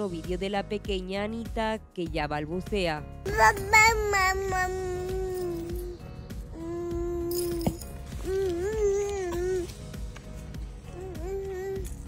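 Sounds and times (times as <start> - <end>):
soft background music: 0.0 - 12.0
baby babbling: 3.3 - 6.0, 8.2 - 9.7, 11.0 - 12.0.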